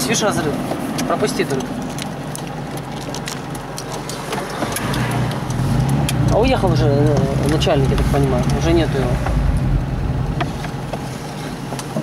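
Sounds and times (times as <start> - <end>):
car engine running: 0.1 - 12.0.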